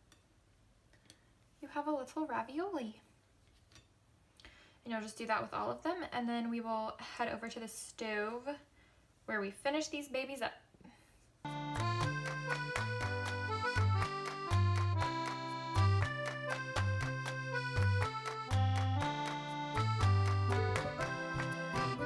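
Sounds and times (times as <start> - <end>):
upbeat background music: 11.5 - 22.0.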